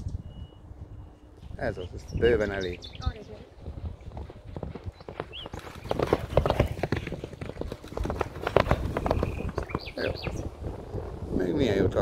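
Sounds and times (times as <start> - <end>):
horses galloping on sand: 1.3 - 12.0.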